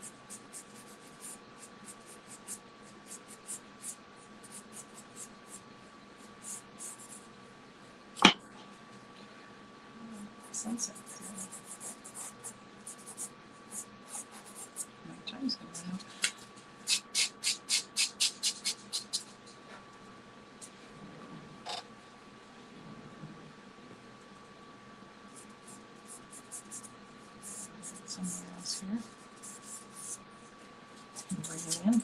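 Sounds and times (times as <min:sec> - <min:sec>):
pastel scratching on paper: 0:29.4 - 0:30.2, 0:31.2 - 0:32.0.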